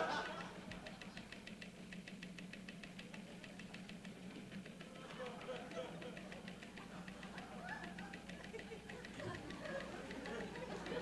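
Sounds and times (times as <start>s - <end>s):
rapid regular ticking: 0.0s - 11.0s.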